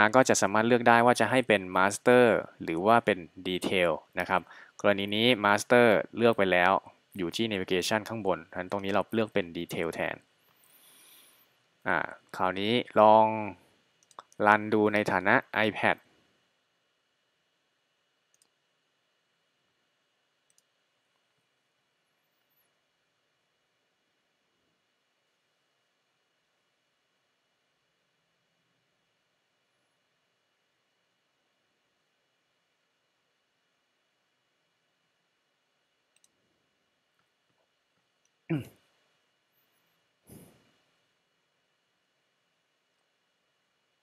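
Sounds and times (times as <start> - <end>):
computer mouse clicks: 18.3 - 18.6, 20.4 - 21.4, 36.1 - 36.4.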